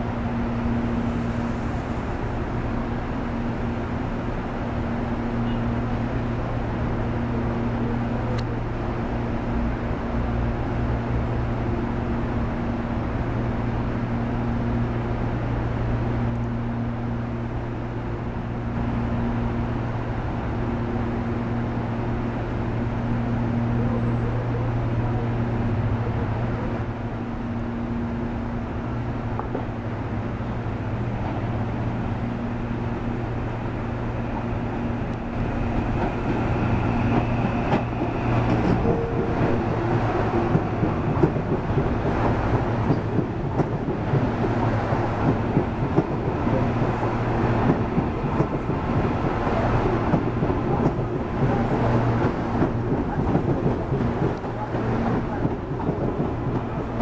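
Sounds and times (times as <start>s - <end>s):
electric train hum: 0.0s - 57.0s
train wheels rattling on rails: 34.2s - 57.0s.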